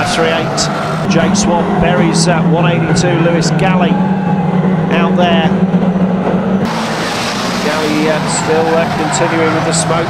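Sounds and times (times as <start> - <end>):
stock car engines droning: 0.0 - 10.0
track noise: 0.0 - 10.0.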